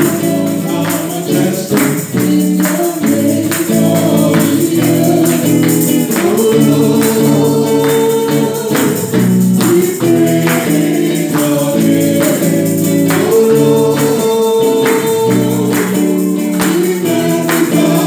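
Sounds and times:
woman singing: 0.0s - 9.0s, 9.6s - 18.0s
electric guitar: 0.0s - 18.0s
steady percussion beat: 0.0s - 18.0s.

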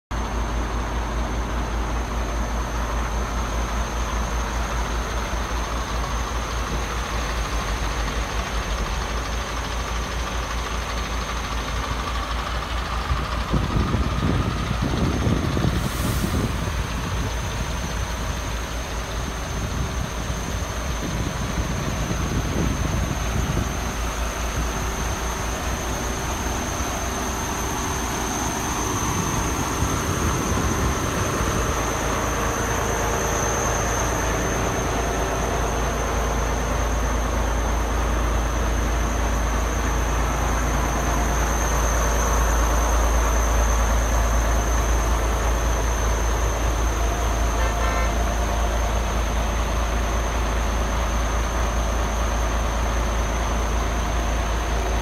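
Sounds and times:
diesel truck engine idling: 0.1s - 55.0s
low rumbling on microphone: 13.1s - 18.3s.

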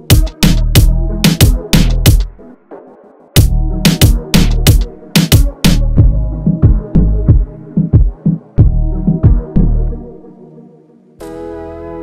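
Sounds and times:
deep bass and kick drum beat: 0.0s - 2.3s, 3.4s - 9.9s.

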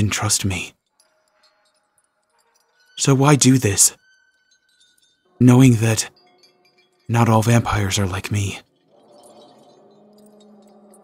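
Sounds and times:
chime-like tinkling: 0.0s - 11.0s
soft sustained tones: 0.0s - 11.0s.

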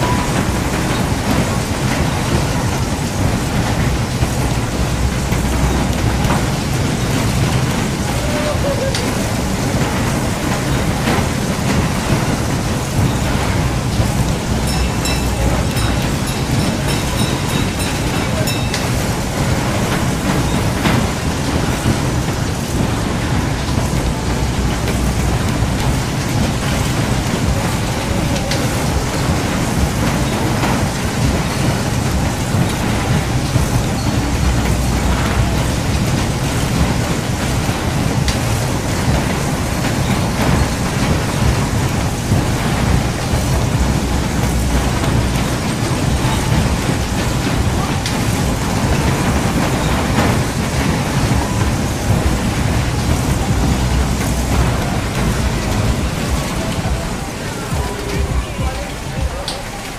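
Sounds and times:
wind buffeting microphone: 0.0s - 59.5s.

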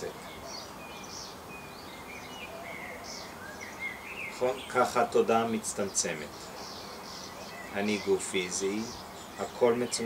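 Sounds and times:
steady low background noise: 0.0s - 10.0s.

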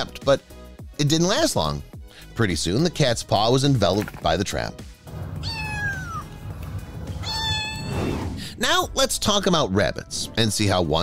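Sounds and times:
cat meowing: 5.2s - 6.4s, 7.1s - 8.2s.

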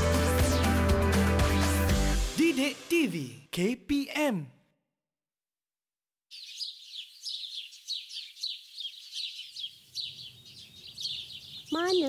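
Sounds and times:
birds chirping chorus: 6.3s - 12.0s.

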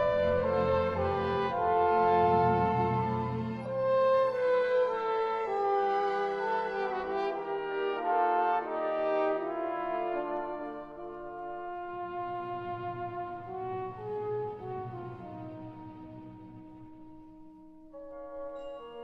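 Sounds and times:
trombone duet: 0.0s - 16.2s
lower accompaniment: 0.0s - 19.0s.

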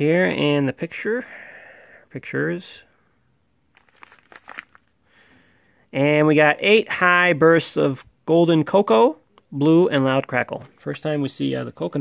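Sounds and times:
plastic wrapping crinkling: 3.7s - 4.9s.

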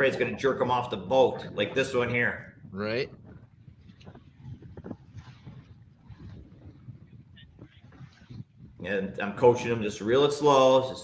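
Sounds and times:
water lapping: 0.0s - 10.8s
wind: 0.0s - 11.0s.

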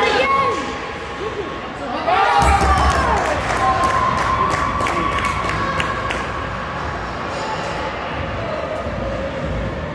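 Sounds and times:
spectators cheering: 2.3s - 6.6s.

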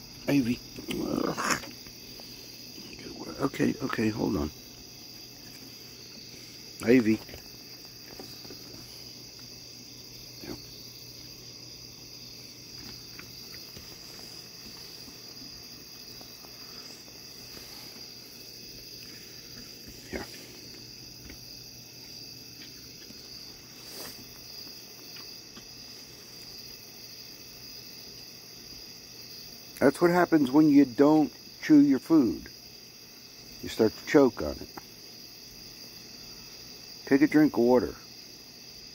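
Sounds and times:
crickets chirping: 0.0s - 38.9s.

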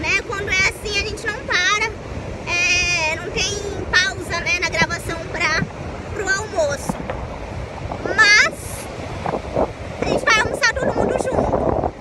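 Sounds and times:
woman talking: 0.0s - 7.0s, 8.0s - 8.9s, 10.0s - 11.6s
surf breaking: 0.0s - 12.0s
wind on microphone: 0.0s - 12.0s.

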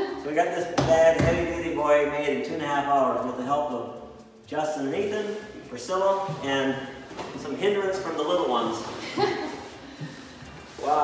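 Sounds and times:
people talking: 4.5s - 8.9s, 10.8s - 11.0s.

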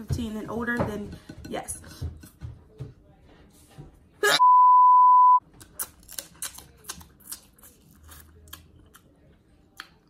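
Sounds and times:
censor bleep: 4.4s - 5.4s.

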